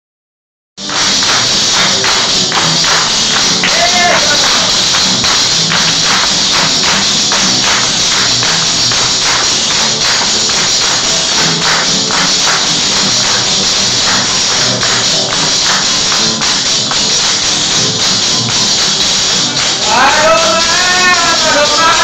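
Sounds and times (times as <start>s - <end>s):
strummed acoustic guitars: 0.8s - 22.0s
tambourine jingling: 0.8s - 22.0s.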